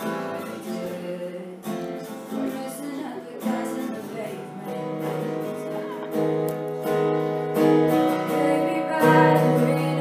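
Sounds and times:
woman singing: 0:00.0 - 0:05.9, 0:07.9 - 0:10.0
acoustic guitar strumming: 0:00.0 - 0:10.0.

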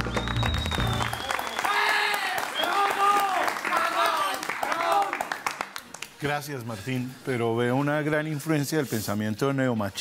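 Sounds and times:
applause: 0:00.0 - 0:06.2.

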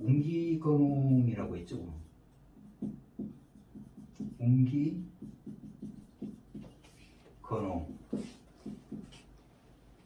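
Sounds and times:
marker writing on whiteboard: 0:00.0 - 0:09.6.

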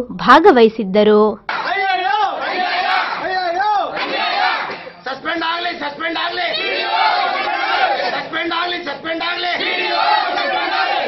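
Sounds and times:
crowd of men shouting slogans: 0:01.5 - 0:04.9, 0:05.6 - 0:11.0.

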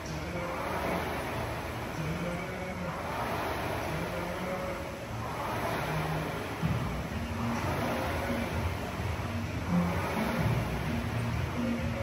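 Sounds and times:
rowing machine fan whirring: 0:00.0 - 0:12.0.

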